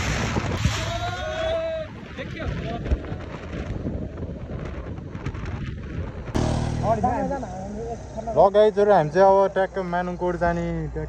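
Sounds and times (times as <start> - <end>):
wind rushing over microphone: 0.0 - 7.4
motorcycle low rumble: 6.1 - 8.0
held pitched tone: 6.4 - 7.6.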